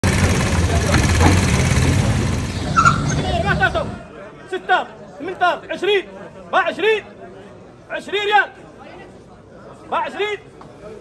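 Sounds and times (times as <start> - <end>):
vehicle engine idling: 0.0 - 4.1
faint voices: 0.0 - 11.0.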